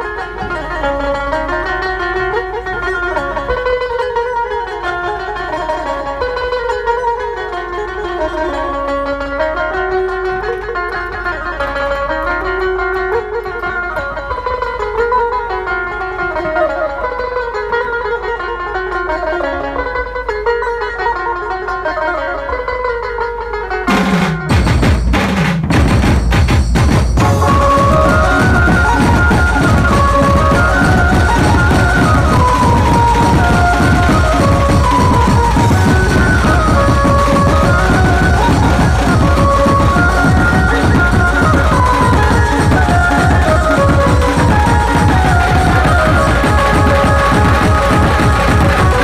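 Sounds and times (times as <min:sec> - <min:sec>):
amplified lead instrument melody: 0:00.0 - 0:24.6, 0:27.1 - 0:49.0.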